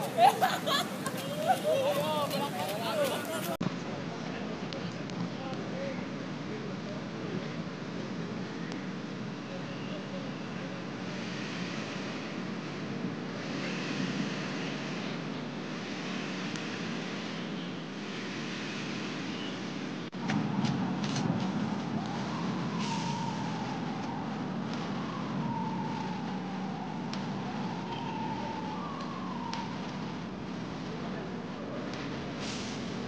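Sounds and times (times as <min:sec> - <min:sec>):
steady noise haze: 0:00.0 - 0:33.0.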